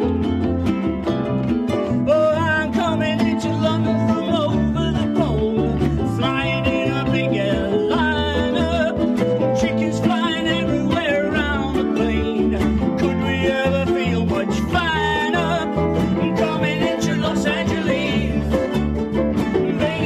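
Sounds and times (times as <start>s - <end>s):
bass notes: 0.0s - 20.0s
ukuleles strumming: 0.0s - 20.0s
people singing into microphones: 3.4s - 18.7s, 19.5s - 20.0s.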